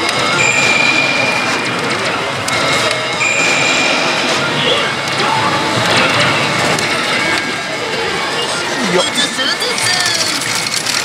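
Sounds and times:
pachinko machines din: 0.0s - 11.0s
high electronic tone: 0.3s - 6.3s.

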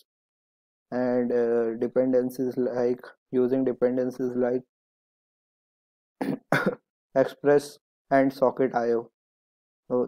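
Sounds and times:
man speaking: 1.0s - 4.6s, 6.2s - 9.1s
man clearing throat: 6.2s - 6.8s.

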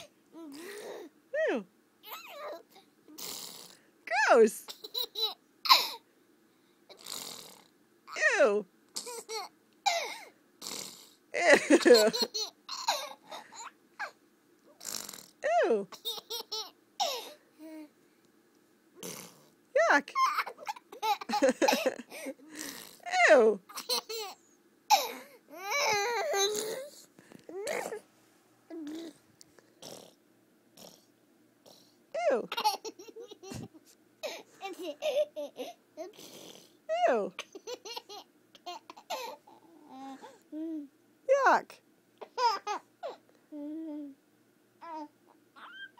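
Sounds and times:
toddler laughing: 32.5s - 36.2s.

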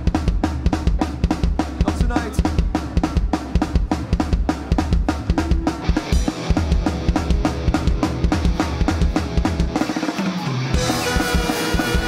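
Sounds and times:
bass guitar: 0.0s - 12.0s
drum kit beat: 0.0s - 12.0s
electric guitars: 5.1s - 12.0s.

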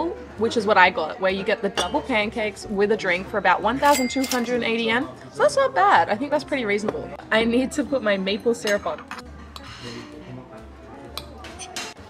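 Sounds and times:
background music: 0.0s - 12.0s
cutlery scraping a ceramic plate: 8.7s - 10.0s, 11.2s - 12.0s.

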